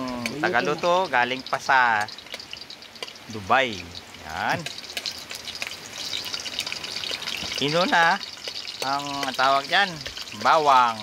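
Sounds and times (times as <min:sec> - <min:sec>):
garlic sizzling in oil: 0:00.0 - 0:11.0
metal spoon stirring: 0:04.0 - 0:11.0.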